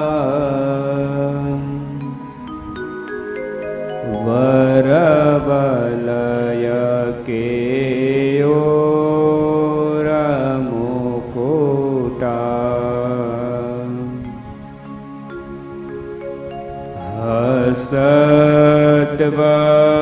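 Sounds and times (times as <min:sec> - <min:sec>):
person singing a slow chant: 0:00.0 - 0:02.2, 0:03.9 - 0:15.0, 0:16.9 - 0:20.0.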